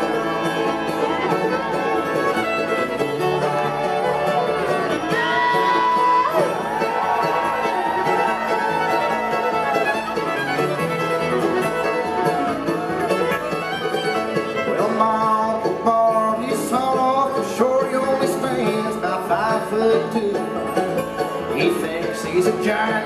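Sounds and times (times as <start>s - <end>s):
acoustic guitar: 0.0s - 23.0s
banjo: 0.0s - 23.0s
fiddle with sliding notes: 0.0s - 23.0s
mandolin: 0.0s - 23.0s
upright bass: 8.5s - 23.0s.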